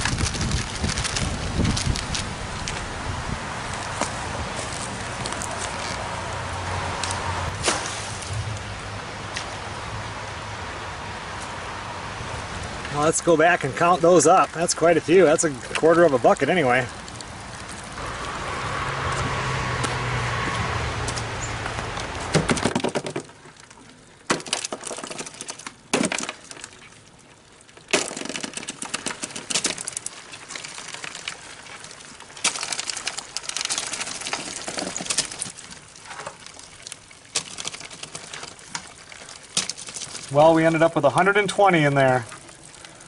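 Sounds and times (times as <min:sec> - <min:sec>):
rushing noise with low hum: 0:00.0 - 0:13.1, 0:17.0 - 0:22.4
crayfish shells clicking on plastic: 0:27.9 - 0:31.3.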